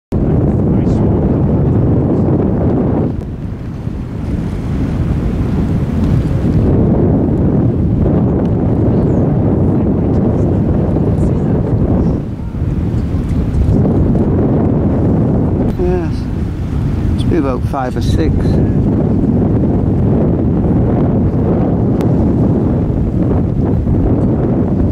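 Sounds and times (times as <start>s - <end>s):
wind buffeting microphone: 0.1s - 24.9s.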